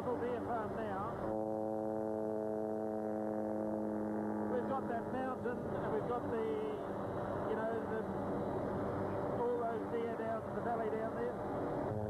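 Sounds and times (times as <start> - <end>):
sustained synthesizer chord: 0.2 - 7.2.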